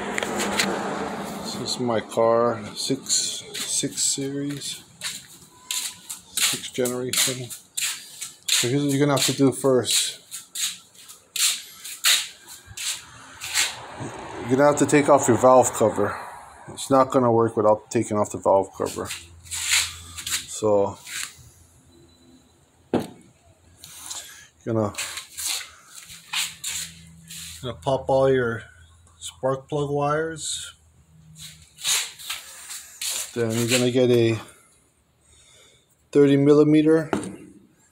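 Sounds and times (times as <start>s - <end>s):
man speaking: 1.5s - 4.9s, 6.4s - 7.6s, 8.5s - 10.3s, 14.4s - 19.2s, 20.5s - 21.1s, 24.6s - 25.2s, 27.6s - 30.8s, 33.3s - 34.5s
soft scuffs and rustles: 2.8s - 13.8s, 18.8s - 21.5s, 24.8s - 27.8s, 31.3s - 34.4s.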